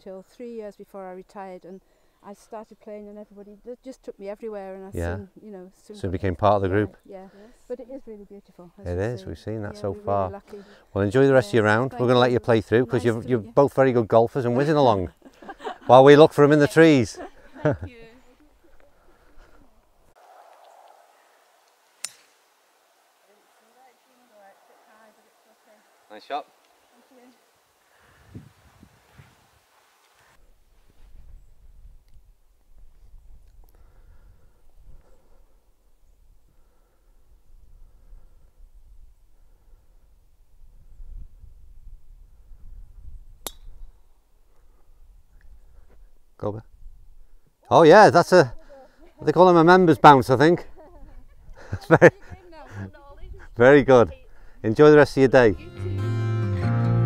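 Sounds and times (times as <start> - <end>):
golf club striking ball: 20.3 - 22.5, 43.4 - 43.8.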